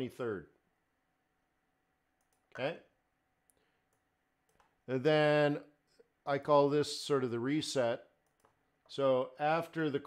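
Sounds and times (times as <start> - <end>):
man talking: 0.0 - 0.5, 2.5 - 2.9, 4.9 - 5.7, 6.3 - 8.1, 8.9 - 10.0
computer mouse clicks: 2.2 - 2.5, 3.5 - 4.8, 8.2 - 8.6.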